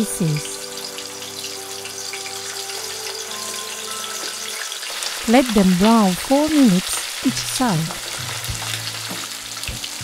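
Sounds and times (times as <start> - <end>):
chicken frying in oil: 0.0 - 10.0
soft background music: 0.0 - 10.0.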